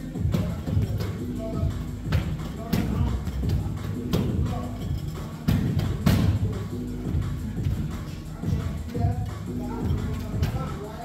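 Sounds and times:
music with vocals: 0:00.0 - 0:11.0
irregular thuds: 0:00.2 - 0:06.5.

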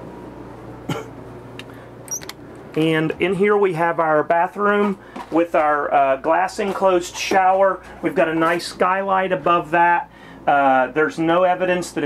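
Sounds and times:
air conditioner humming: 0:00.0 - 0:12.0
man coughing: 0:00.9 - 0:01.2.

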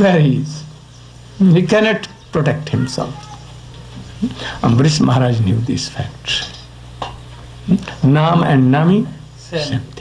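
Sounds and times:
man talking: 0:00.0 - 0:00.8, 0:01.4 - 0:03.4, 0:04.2 - 0:06.7, 0:07.7 - 0:10.0
low electrical hum: 0:00.0 - 0:10.0
breathy hiss: 0:02.8 - 0:04.8.

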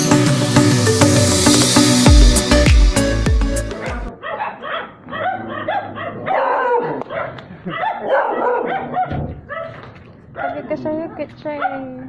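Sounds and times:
upbeat background music: 0:00.0 - 0:04.1
dog barking and yipping: 0:04.1 - 0:09.8, 0:10.4 - 0:10.8.

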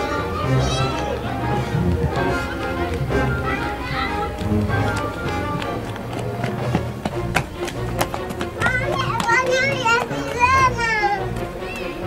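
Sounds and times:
children shouting: 0:00.0 - 0:06.7, 0:07.4 - 0:12.0.

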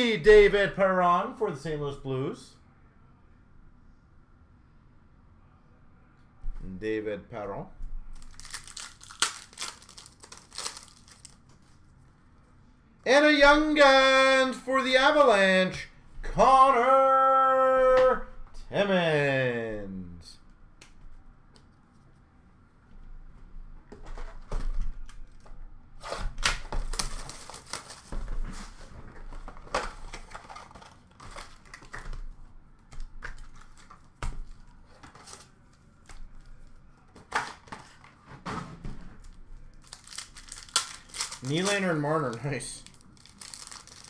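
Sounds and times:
wrappers crinkling and tearing: 0:08.2 - 0:11.5, 0:26.8 - 0:28.1, 0:39.7 - 0:44.0.

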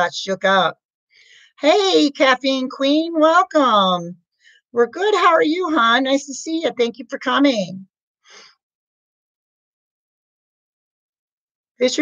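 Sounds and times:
woman breathing: 0:01.2 - 0:01.6, 0:08.3 - 0:08.6.

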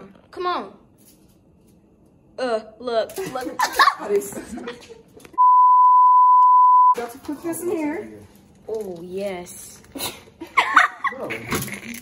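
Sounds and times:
high-pitched test tone beep: 0:05.4 - 0:07.0.

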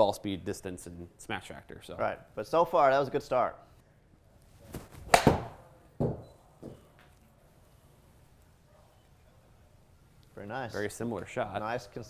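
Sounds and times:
ball hitting screen: 0:04.7 - 0:06.8
golf club striking ball: 0:05.1 - 0:05.6.

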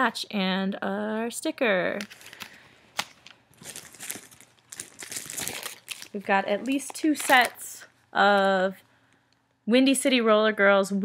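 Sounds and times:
plastic packaging crinkling: 0:02.0 - 0:08.6.

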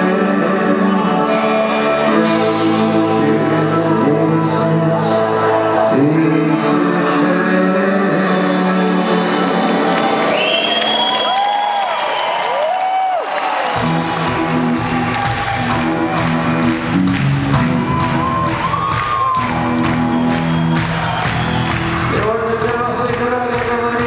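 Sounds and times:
live rock band playing: 0:00.0 - 0:11.4, 0:13.7 - 0:24.0
drums: 0:00.0 - 0:24.0
audience cheering: 0:09.4 - 0:23.4.

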